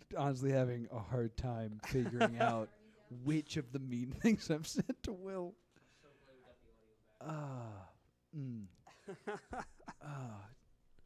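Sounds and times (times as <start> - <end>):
man murmuring: 7.2 - 8.9, 9.8 - 10.6
man sighing: 7.2 - 9.0, 9.9 - 10.7.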